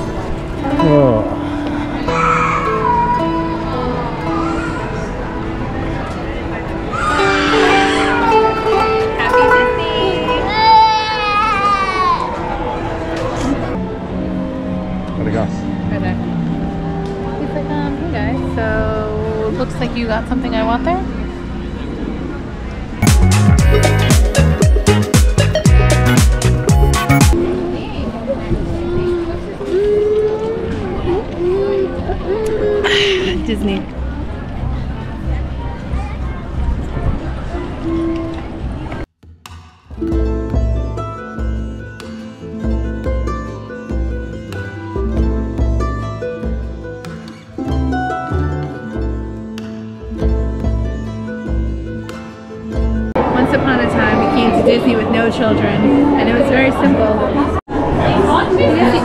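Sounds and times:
background music: 0:00.0 - 0:22.0, 0:23.0 - 0:28.2, 0:39.4 - 0:57.6
distant crowd chatter: 0:00.0 - 0:26.1, 0:27.3 - 0:39.1, 0:50.0 - 0:59.0
toddler crying and wailing: 0:01.9 - 0:05.4, 0:06.9 - 0:09.0, 0:10.0 - 0:12.6, 0:28.7 - 0:33.2.

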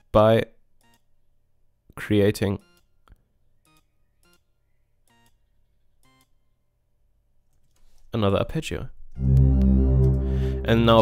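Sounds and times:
short synthesizer notes: 0:09.2 - 0:11.0.

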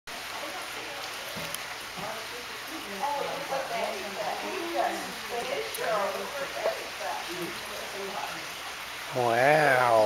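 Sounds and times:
steady indoor hiss: 0:00.1 - 0:10.0.

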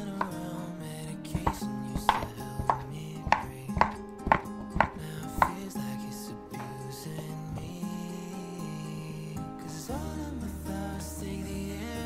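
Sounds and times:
knife chopping on wooden board: 0:00.2 - 0:00.4, 0:01.3 - 0:05.6.

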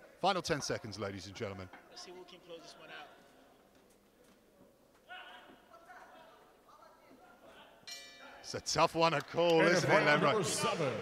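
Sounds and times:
boxing bell ringing: 0:07.9 - 0:08.5.

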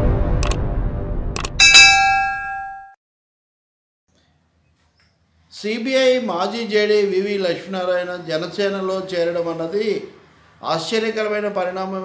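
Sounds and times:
notification bell chime: 0:01.6 - 0:02.9.

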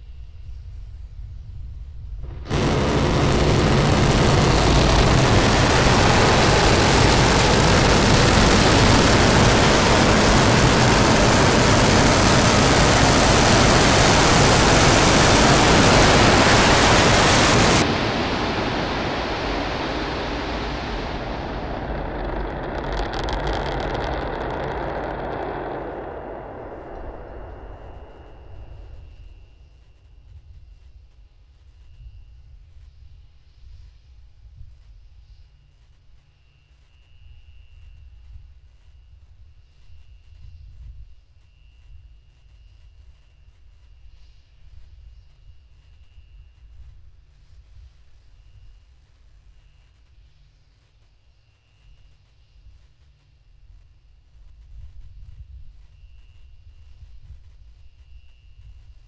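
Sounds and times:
low rumble with crackle: 0:00.0 - 0:59.0
rocket engines roaring: 0:02.2 - 0:29.2.

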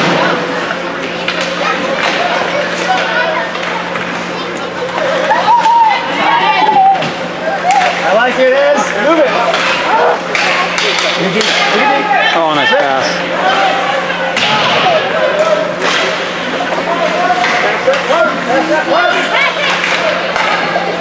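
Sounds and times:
crowd shouting and cheering: 0:00.0 - 0:21.0
hockey sticks and puck clacking: 0:00.7 - 0:05.8, 0:07.0 - 0:12.0, 0:12.8 - 0:20.9.

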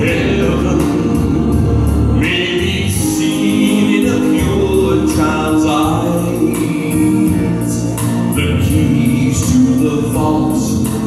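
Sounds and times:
man singing a slow ballad: 0:00.0 - 0:11.0
sustained musical accompaniment: 0:00.0 - 0:11.0.

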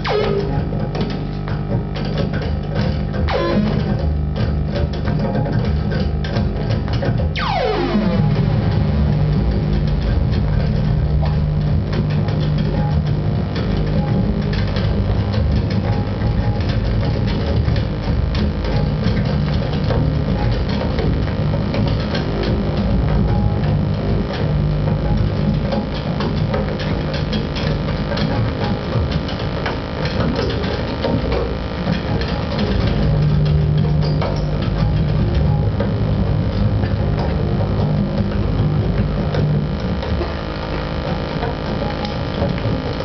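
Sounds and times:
crackles and clicks: 0:00.0 - 0:43.0
low droning hum: 0:00.0 - 0:43.0.

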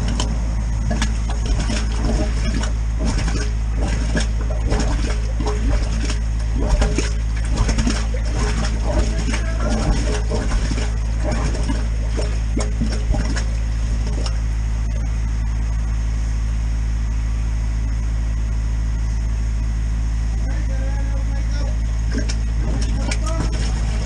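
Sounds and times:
machine engine humming: 0:00.0 - 0:24.0.

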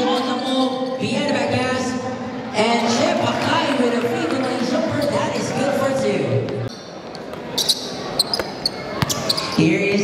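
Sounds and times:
voices and crowd: 0:00.0 - 0:10.0
sneakers squeaking: 0:04.3 - 0:05.6, 0:06.4 - 0:10.0
ball bouncing on gym floor: 0:08.3 - 0:09.4.

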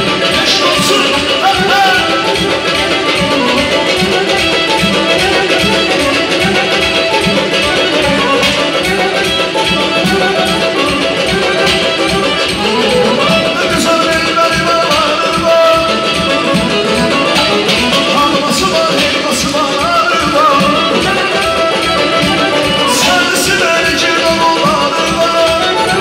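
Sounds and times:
live band playing: 0:00.0 - 0:26.0.

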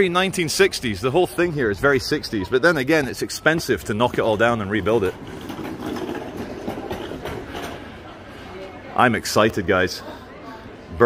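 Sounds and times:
cleaning trolley rattling over paving: 0:03.6 - 0:08.6.

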